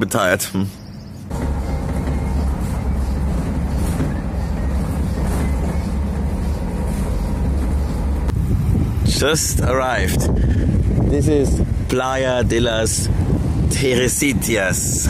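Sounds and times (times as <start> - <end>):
bus engine and road rumble: 0.0 - 15.0.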